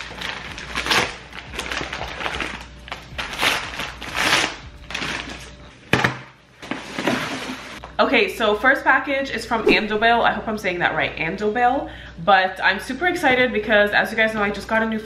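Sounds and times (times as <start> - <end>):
paper mailer tearing: 0.0 - 5.5
packaging crinkling and rustling: 0.0 - 5.6.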